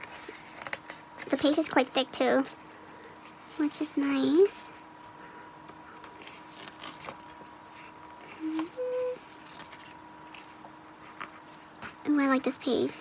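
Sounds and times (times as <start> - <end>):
book pages turning: 0.0 - 1.6, 6.0 - 12.0
person humming notes: 8.4 - 9.3.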